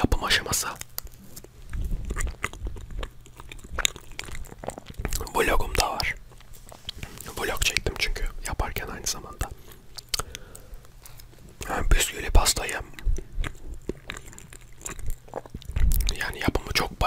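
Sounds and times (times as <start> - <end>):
close chewing with mouth clicks: 0.0 - 17.0.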